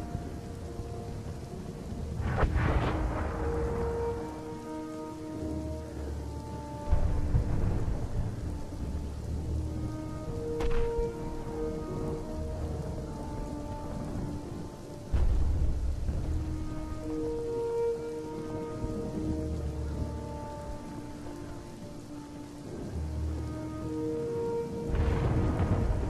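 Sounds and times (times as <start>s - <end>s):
slow background music: 0.0s - 26.0s
steady rain hiss: 0.0s - 26.0s
thunder rumbling: 0.0s - 26.0s
sharp thunder crack: 2.2s - 4.4s, 24.9s - 26.0s.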